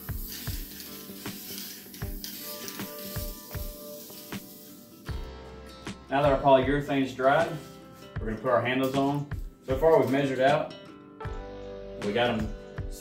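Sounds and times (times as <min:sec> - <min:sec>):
aerosol can spraying hiss: 0:00.0 - 0:05.3
background music with beat: 0:00.0 - 0:13.0.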